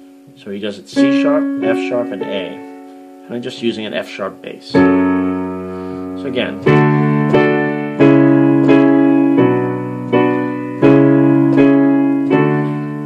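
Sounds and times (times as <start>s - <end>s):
piano chords on digital keyboard: 0.0s - 13.0s.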